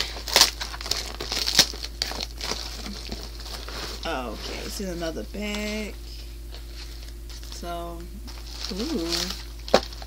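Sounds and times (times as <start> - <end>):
plastic mailer crinkling: 0.0 - 5.8, 8.3 - 10.0.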